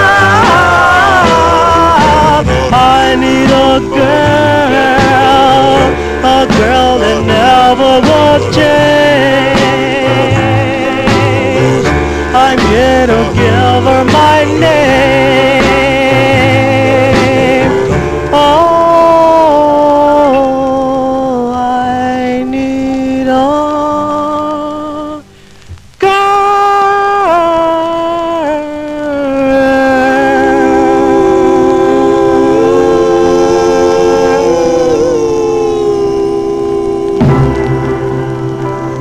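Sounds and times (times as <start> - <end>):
vocal group holding a chord: 0.0 - 25.3, 27.5 - 39.0.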